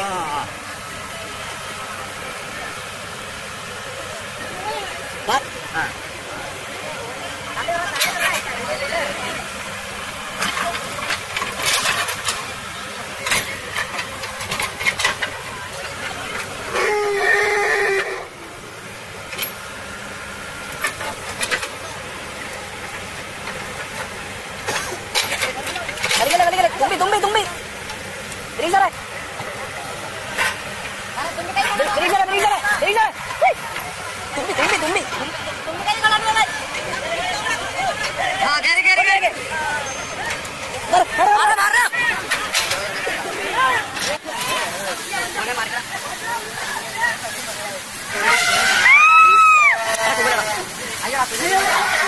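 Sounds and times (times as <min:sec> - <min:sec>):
engine humming: 0:00.0 - 0:52.0
people calling out: 0:16.6 - 0:18.4, 0:48.1 - 0:52.0
people shouting: 0:48.1 - 0:50.7.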